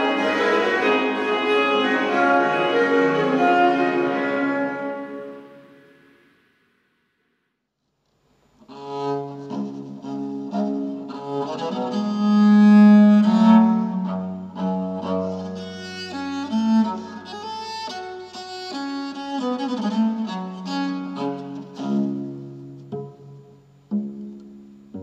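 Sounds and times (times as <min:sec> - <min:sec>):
bowed viol playing chords: 0:00.0 - 0:06.2, 0:08.7 - 0:25.0.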